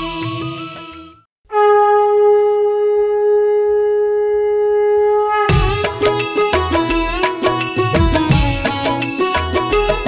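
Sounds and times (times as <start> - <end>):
music: 0.0 - 1.3, 5.4 - 10.0
conch shell blown: 0.2 - 9.3.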